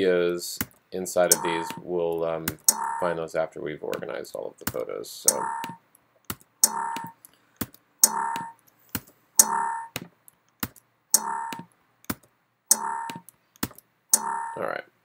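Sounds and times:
computer mouse clicks: 0:00.7 - 0:01.8, 0:05.3 - 0:14.4.

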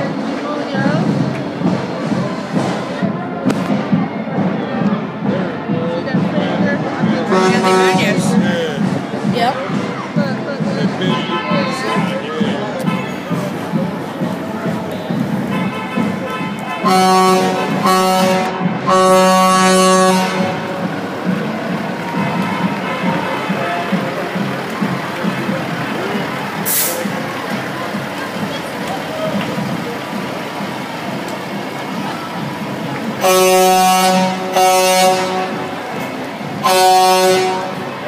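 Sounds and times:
street crowd voices: 0:00.0 - 0:38.0
vehicle horn honking: 0:07.3 - 0:08.4, 0:11.0 - 0:13.4, 0:14.9 - 0:20.9, 0:22.2 - 0:24.4, 0:33.2 - 0:35.8, 0:36.6 - 0:38.0.

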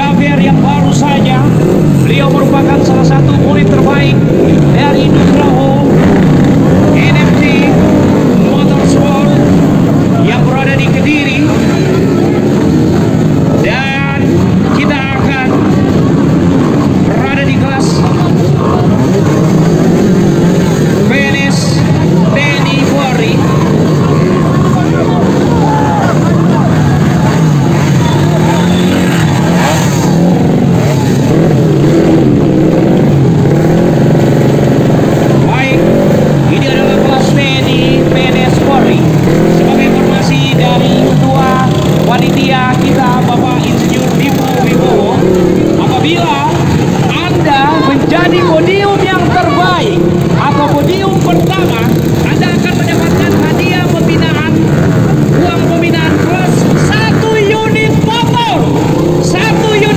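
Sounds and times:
dirt bike engines revving: 0:00.0 - 0:59.9
voices: 0:00.0 - 0:59.9.

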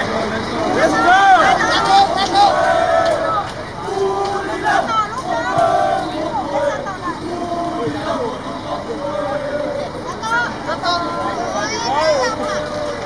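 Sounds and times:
crowd chattering: 0:00.0 - 0:13.0.

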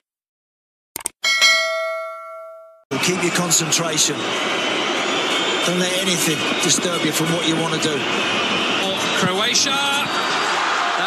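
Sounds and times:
notification bell chime: 0:01.2 - 0:02.8.

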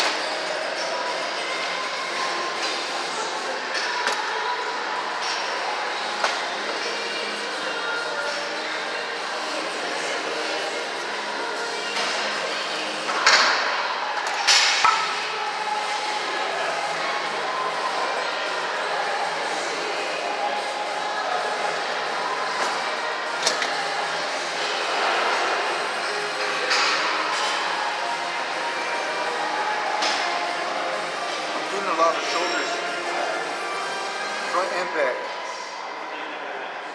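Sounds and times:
din of voices in a large hall: 0:00.0 - 0:36.9.

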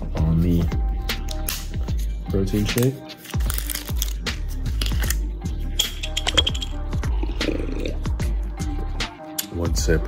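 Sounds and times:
music with steady beat: 0:00.0 - 0:10.0.

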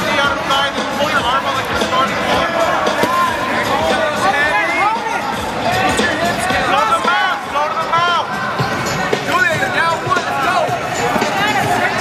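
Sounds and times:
crowd din: 0:00.0 - 0:12.0.

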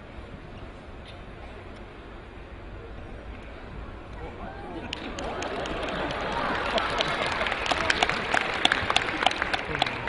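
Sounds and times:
background crowd noise: 0:00.0 - 0:10.0
scattered hand claps: 0:04.9 - 0:10.0.

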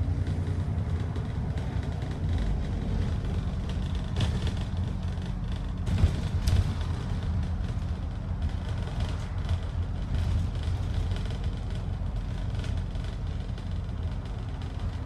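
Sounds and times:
bus engine droning: 0:00.0 - 0:15.0
road and cabin noise: 0:00.0 - 0:15.0.

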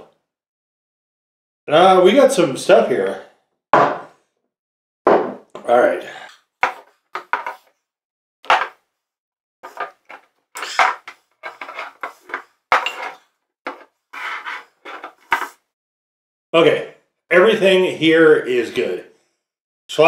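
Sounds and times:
glass bottles knocking on wooden table: 0:03.8 - 0:04.1, 0:05.1 - 0:05.6, 0:12.7 - 0:13.8
glass bottles clinking: 0:12.7 - 0:13.2.

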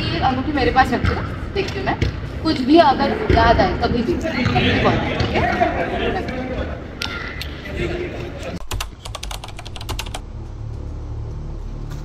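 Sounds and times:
keyboard typing clicks: 0:08.6 - 0:10.2
low steady drone: 0:10.2 - 0:12.0.

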